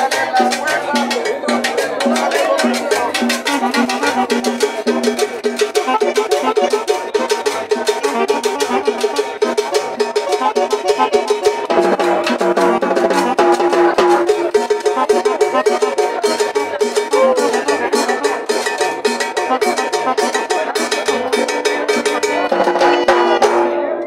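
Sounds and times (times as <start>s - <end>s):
drum kit: 0.0s - 24.0s
hand drums: 0.0s - 24.0s
held pitched instrument notes: 0.0s - 24.0s.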